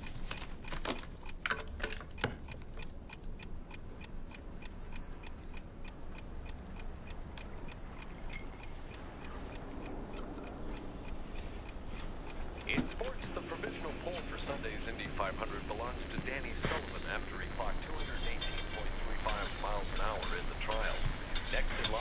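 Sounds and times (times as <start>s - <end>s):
clock ticking rapidly: 0.0s - 22.0s
faint low room hum: 0.0s - 22.0s.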